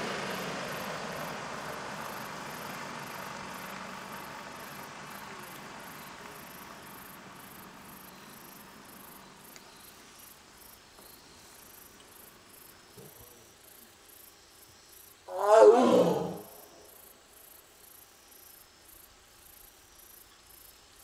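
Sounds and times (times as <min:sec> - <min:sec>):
faint insects chirping: 0:00.1 - 0:21.0
tiger calling: 0:15.3 - 0:16.9.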